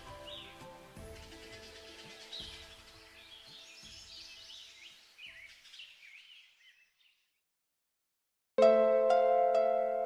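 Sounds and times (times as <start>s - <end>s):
forest birds chirping: 0.0s - 7.4s.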